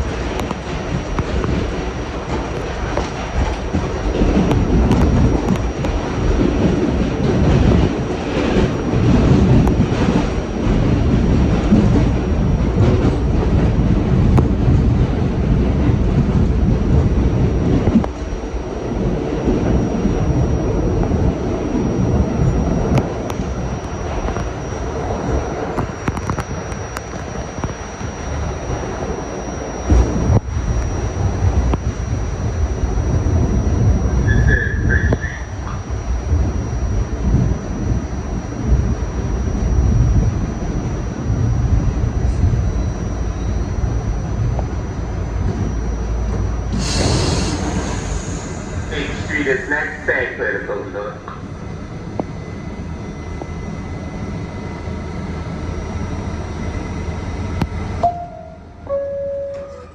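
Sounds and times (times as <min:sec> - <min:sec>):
subway train wheels rumbling: 0:00.0 - 0:59.9.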